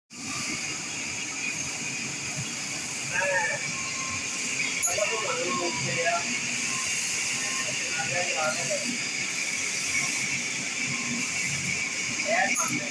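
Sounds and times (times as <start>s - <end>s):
steel hissing against abrasive belt: 0.1s - 12.9s
belt grinders running: 0.2s - 12.9s.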